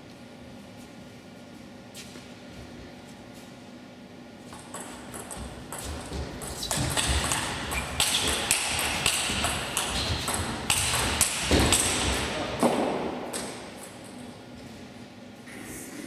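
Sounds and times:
table tennis ball clicking: 6.7 - 12.2.

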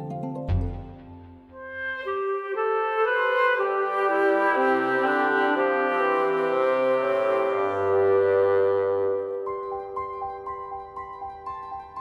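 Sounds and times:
brass playing sustained chords: 1.5 - 9.5.

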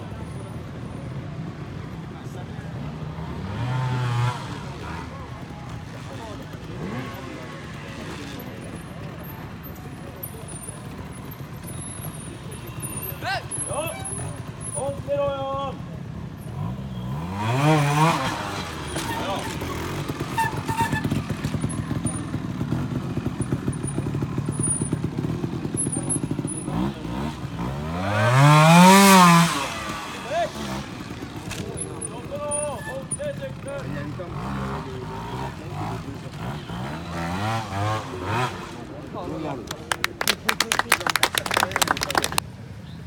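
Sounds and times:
motorcycle engine idling and revving: 0.0 - 40.8, 41.7 - 43.0.

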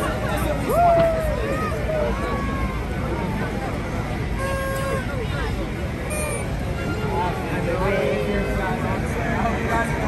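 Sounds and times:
crowd voices talking and calling: 0.0 - 10.0
low city rumble: 0.0 - 10.0.

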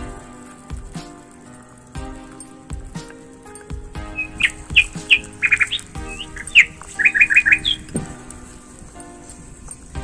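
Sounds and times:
soft background music: 0.0 - 10.0
small bird chirping: 3.0 - 8.8.

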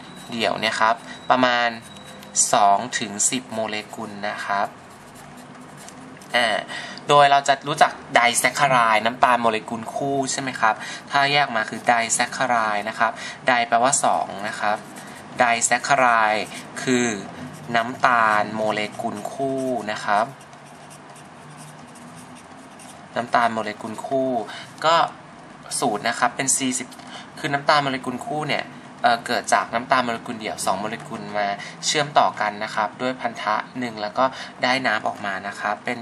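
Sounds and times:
marker pen writing on paper: 0.0 - 2.5, 3.6 - 6.5, 11.6 - 13.1, 14.0 - 23.6.

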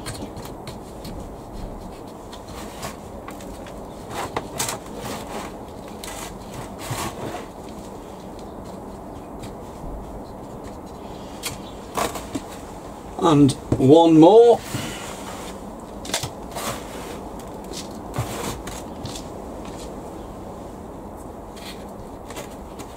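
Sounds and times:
compost rustling against plastic pot: 0.0 - 22.9.

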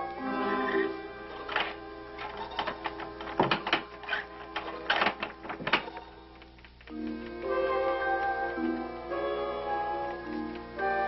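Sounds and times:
sharp clicks and knocks: 1.5 - 7.5.

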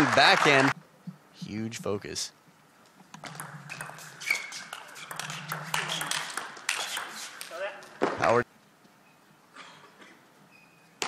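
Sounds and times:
low hall noise: 0.0 - 11.0
person speaking: 0.1 - 2.3.

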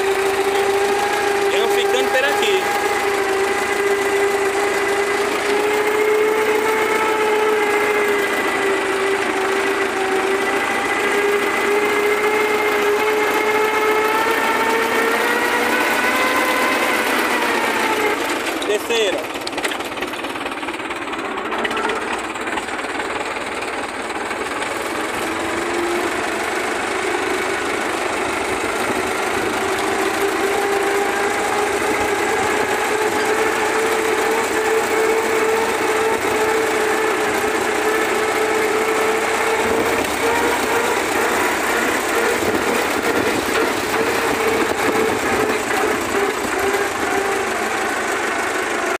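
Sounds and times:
tractor engine running: 0.0 - 49.0.

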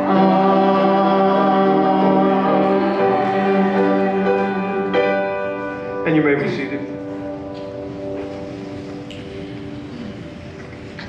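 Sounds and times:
church keyboard chord: 0.0 - 11.0
congregation shuffling: 0.0 - 11.0
steady room hum: 0.0 - 11.0.

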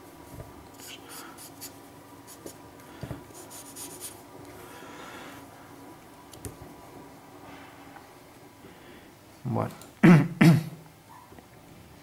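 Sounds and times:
marker scratching on paper: 3.3 - 4.2.

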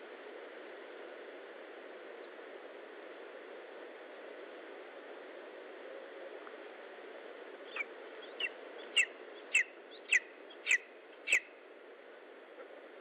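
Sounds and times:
steady low hiss: 0.0 - 13.0
eagle yelping calls: 7.7 - 11.5.

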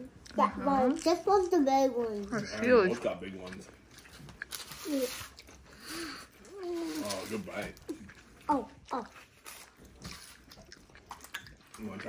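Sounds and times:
child chewing crunchy pizza: 0.0 - 12.0
child murmuring: 4.8 - 5.3, 6.0 - 7.1, 8.5 - 9.2.

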